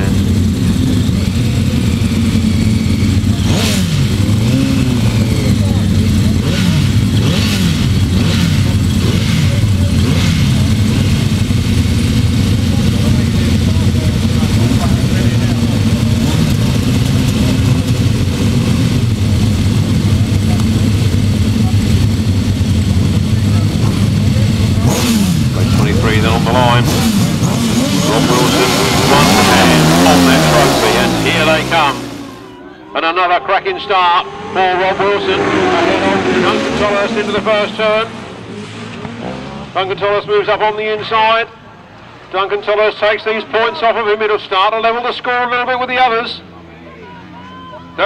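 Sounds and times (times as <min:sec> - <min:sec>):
sidecar engines revving: 0:00.0 - 0:48.0.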